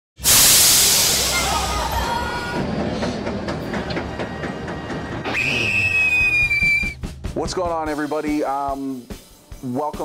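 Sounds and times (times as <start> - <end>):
high sliding whistle: 5.2 - 7.0.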